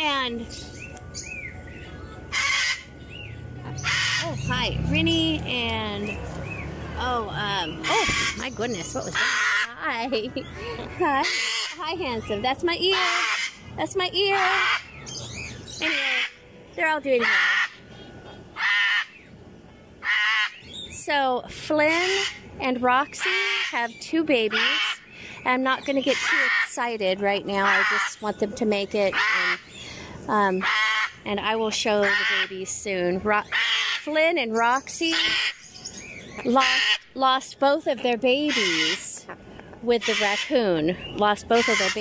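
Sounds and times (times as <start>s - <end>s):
cockatoo calling loudly: 2.3s - 3.0s, 3.7s - 4.5s, 7.6s - 9.8s, 11.0s - 16.4s, 17.2s - 19.3s, 20.0s - 20.8s, 21.8s - 25.1s, 26.0s - 26.8s, 27.5s - 28.2s, 29.1s - 29.9s, 30.5s - 31.3s, 31.9s - 32.6s, 33.4s - 34.2s, 35.1s - 37.2s, 38.3s - 42.0s.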